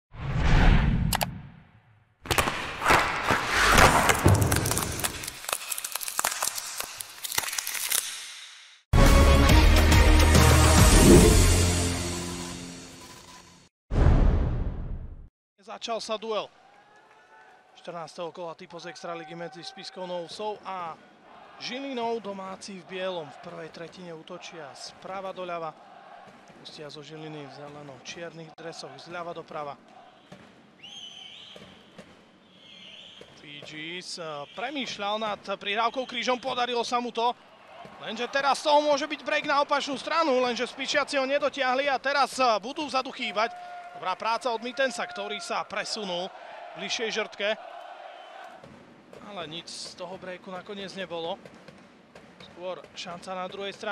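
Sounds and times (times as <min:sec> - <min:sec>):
ice cracking: 0:02.3 - 0:08.2
faint arena background: 0:10.3 - 0:53.9.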